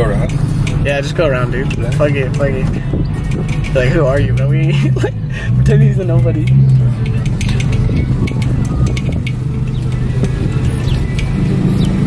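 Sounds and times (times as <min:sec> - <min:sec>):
car engine running low: 0:00.0 - 0:12.0.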